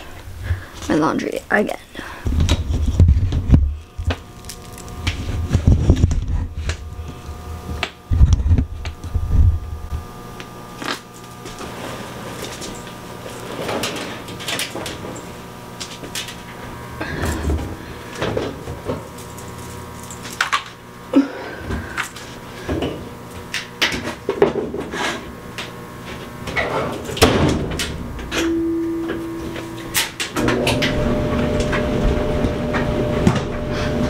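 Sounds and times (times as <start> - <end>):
faint steady hum: 0.0 - 34.0
clothes rustling and dragging: 11.3 - 14.4.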